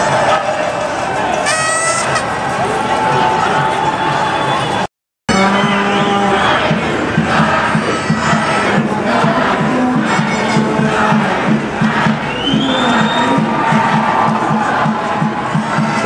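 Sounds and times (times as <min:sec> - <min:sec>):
crowd shouting and cheering: 0:00.0 - 0:16.0
music with rhythmic beat: 0:05.3 - 0:16.0.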